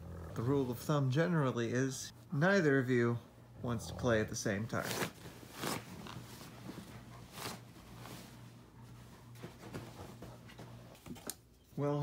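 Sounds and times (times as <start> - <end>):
faint low hum: 0.0 - 12.0
rustling and handling noises: 4.5 - 12.0.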